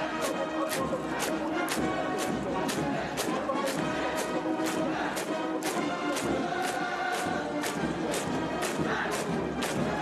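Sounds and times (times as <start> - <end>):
massed voices singing chords: 0.0 - 10.0
parade drum strikes: 0.0 - 10.0.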